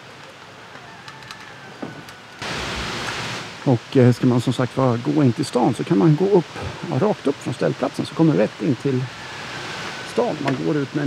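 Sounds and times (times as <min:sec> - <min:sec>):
loud steady rushing noise: 0:06.0 - 0:11.0.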